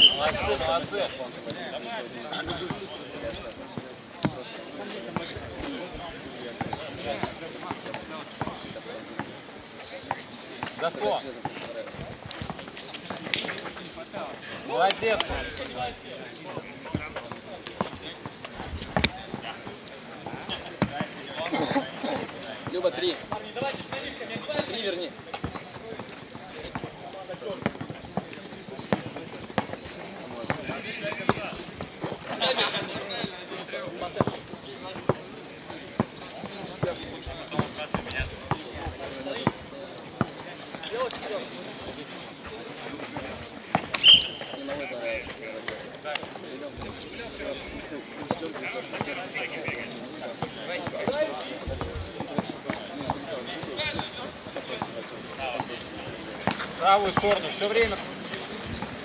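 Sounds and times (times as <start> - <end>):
players' voices: 0.0 - 59.0.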